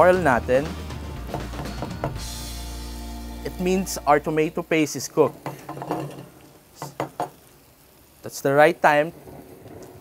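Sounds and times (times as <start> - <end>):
wooden spatula knocking on pan: 1.3 - 2.3, 5.4 - 6.2, 6.8 - 7.4
faint frying in oil: 1.3 - 10.0.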